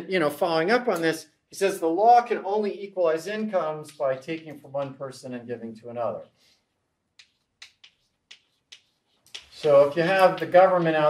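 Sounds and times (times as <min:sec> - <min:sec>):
chalk tapping on blackboard: 0:07.2 - 0:09.7.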